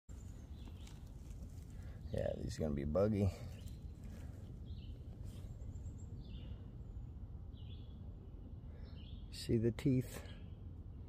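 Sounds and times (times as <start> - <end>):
rustling of dry pine needles: 0.1 - 5.8
low steady rumble: 0.1 - 11.0.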